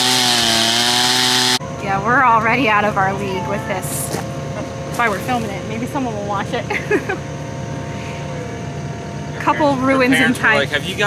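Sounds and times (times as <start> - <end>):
engine idling: 0.0 - 11.0
people talking indistinctly: 1.8 - 7.2, 7.9 - 11.0.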